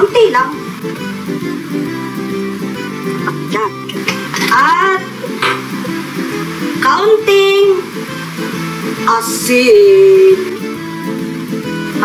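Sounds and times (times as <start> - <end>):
background instrumental music: 0.0 - 12.0.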